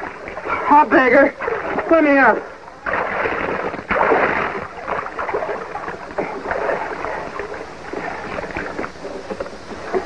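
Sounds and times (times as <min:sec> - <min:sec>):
water lapping against hull: 0:00.0 - 0:10.0
water splashing and dripping: 0:00.0 - 0:10.0.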